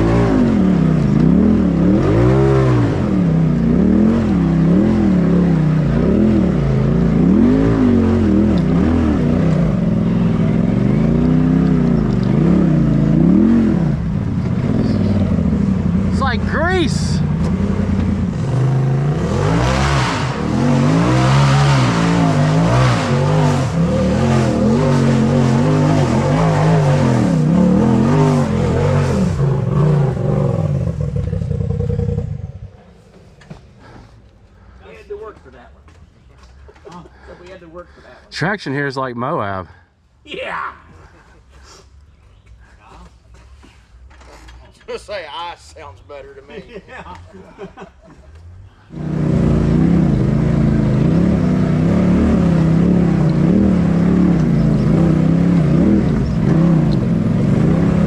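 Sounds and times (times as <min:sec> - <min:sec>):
off-road vehicle engine revving: 0:00.0 - 0:32.9, 0:48.7 - 0:58.0.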